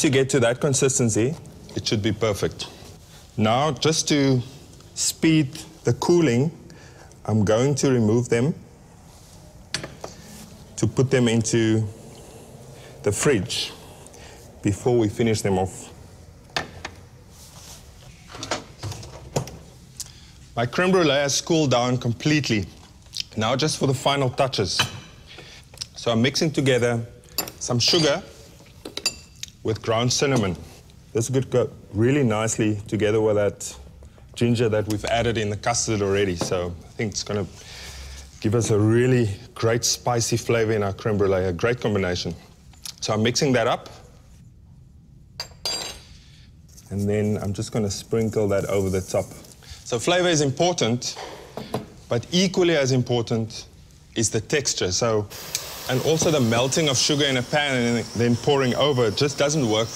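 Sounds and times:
ceramic ramekins clinking: 27.3s - 29.4s, 45.4s - 46.1s.

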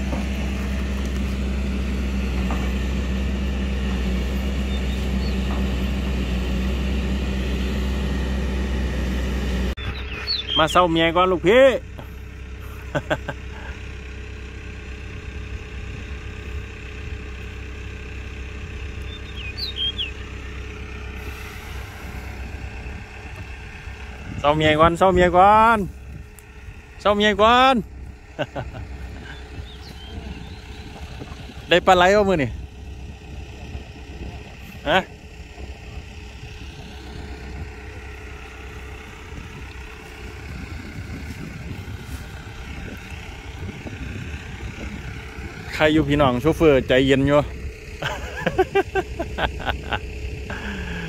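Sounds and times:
excavator diesel engine idling: 0.0s - 51.0s
low rumble: 0.0s - 51.0s
people talking: 10.5s - 11.8s, 24.4s - 25.9s, 27.0s - 27.8s, 31.7s - 32.6s, 34.8s - 35.1s, 45.7s - 48.8s.

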